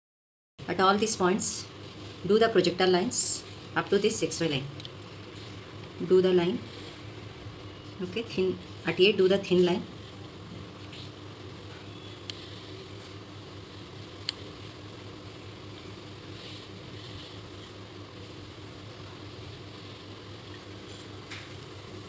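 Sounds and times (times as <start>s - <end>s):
low room hum: 0.6s - 22.0s.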